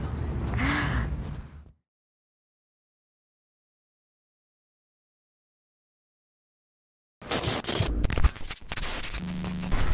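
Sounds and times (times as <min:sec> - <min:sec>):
crackling glitch noise: 0:07.2 - 0:09.9.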